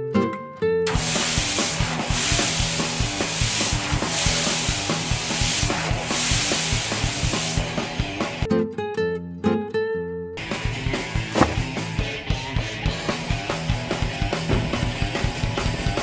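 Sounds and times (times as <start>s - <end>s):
light guitar music: 0.0s - 1.0s, 7.7s - 15.0s
hose spraying water: 0.9s - 8.4s, 11.0s - 11.8s.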